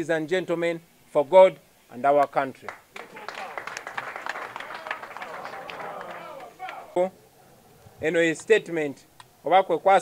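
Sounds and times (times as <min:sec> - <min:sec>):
murmur of voices: 0:03.0 - 0:08.0.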